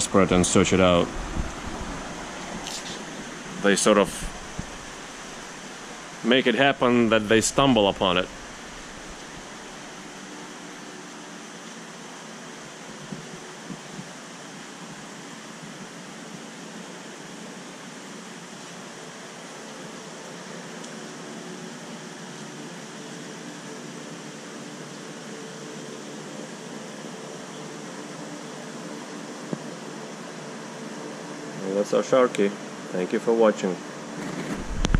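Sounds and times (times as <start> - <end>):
aquarium equipment hiss and hum: 0.0 - 34.9.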